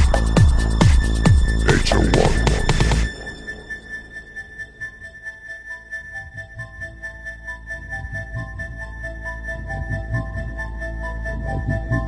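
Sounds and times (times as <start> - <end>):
kick drum and bass: 0.0 - 3.4.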